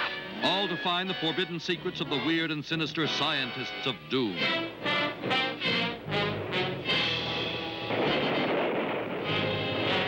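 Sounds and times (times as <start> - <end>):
dramatic trailer music: 4.4 - 10.0
dense noisy blast: 6.1 - 10.0
gunshot: 7.8 - 10.0.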